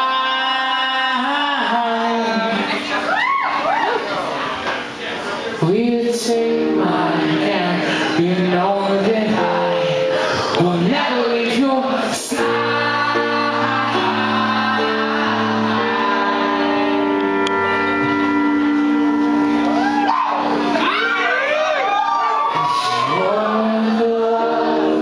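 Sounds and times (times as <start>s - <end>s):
man singing: 0.0s - 2.8s, 5.6s - 15.5s, 22.5s - 25.0s
live band music: 5.7s - 25.0s.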